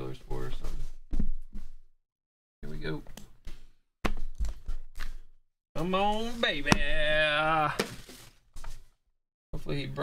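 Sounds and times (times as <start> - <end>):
man speaking: 5.8 - 7.9.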